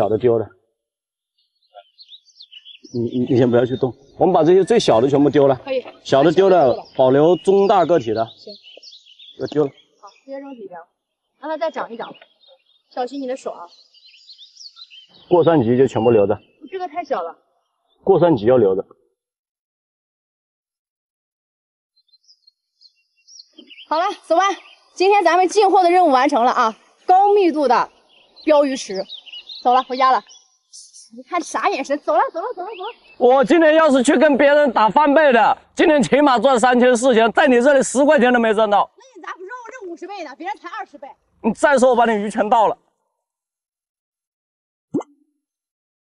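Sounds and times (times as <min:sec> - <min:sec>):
faint high bird chirps: 0:01.3 - 0:18.7, 0:22.0 - 0:35.0
bloop pop sound effect: 0:44.9 - 0:45.3.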